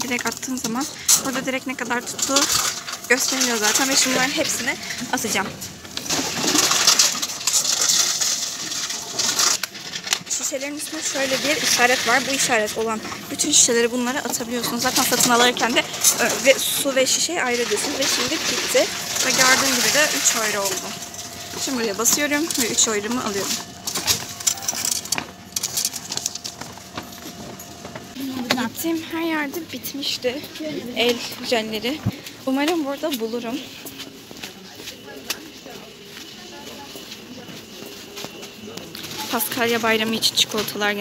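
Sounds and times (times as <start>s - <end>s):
plastic bottles clattering in machine: 0.0s - 30.1s.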